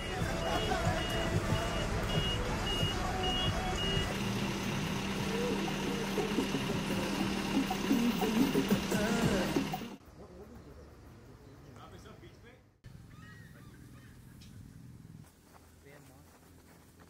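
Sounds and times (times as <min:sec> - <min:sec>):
bus engine running: 0:00.0 - 0:10.0
bus warning beeper: 0:00.0 - 0:10.0.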